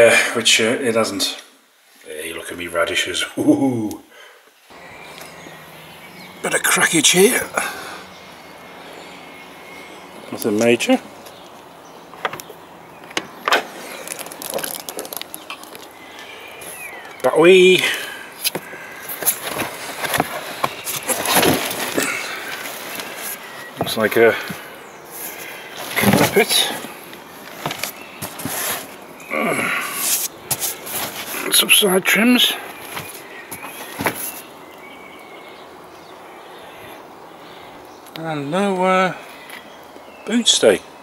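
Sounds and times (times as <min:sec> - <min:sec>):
carpet rustling: 0:18.4 - 0:29.2, 0:30.0 - 0:31.6, 0:32.7 - 0:34.6.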